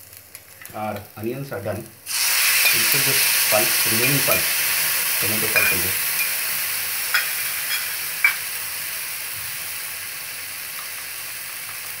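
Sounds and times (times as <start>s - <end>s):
onions sizzling in a frying pan: 0.0s - 12.0s.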